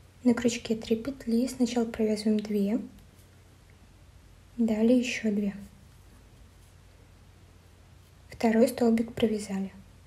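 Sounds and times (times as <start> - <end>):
low hiss: 0.0 - 10.0.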